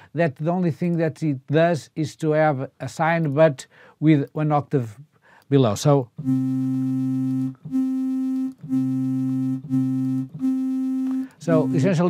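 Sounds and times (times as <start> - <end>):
synthesizer playing repeated note: 6.2 - 12.0.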